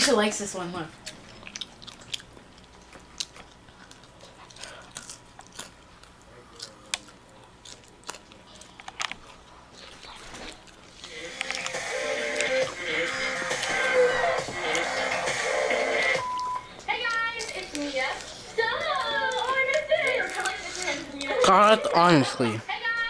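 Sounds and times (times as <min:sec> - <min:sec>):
sharp clicks and crunches: 0:04.9 - 0:10.7, 0:11.3 - 0:12.6
television music: 0:06.2 - 0:23.0.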